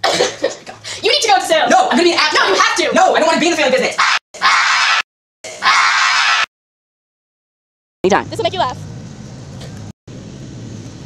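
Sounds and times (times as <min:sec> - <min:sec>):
boy screaming raspy: 0:04.0 - 0:06.5.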